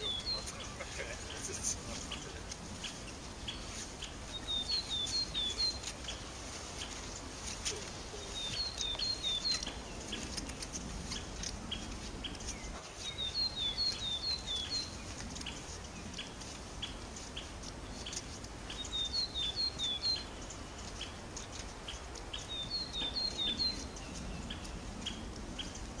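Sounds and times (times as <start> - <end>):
footsteps crunching in snow: 0.0 - 26.0
songbird chirping: 0.0 - 26.0.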